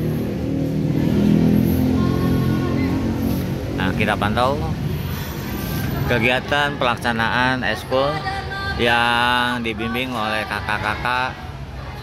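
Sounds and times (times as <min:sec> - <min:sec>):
vehicle engine running: 0:00.0 - 0:07.5.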